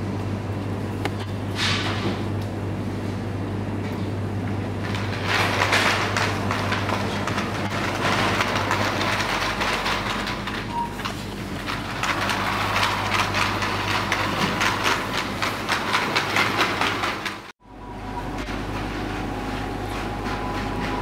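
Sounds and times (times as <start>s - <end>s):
plastic basket wheels rattling on tiles: 4.8s - 17.5s.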